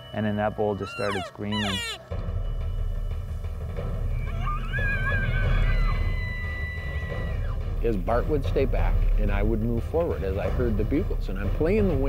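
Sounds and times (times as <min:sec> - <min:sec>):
elk bugling whistle: 0:00.5 - 0:02.1, 0:04.1 - 0:07.6.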